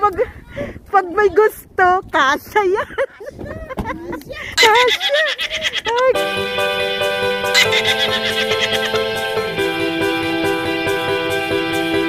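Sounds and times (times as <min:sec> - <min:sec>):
comic whinny-like cry: 0:04.6 - 0:05.8, 0:07.6 - 0:09.0
background music with held chords: 0:06.2 - 0:12.0.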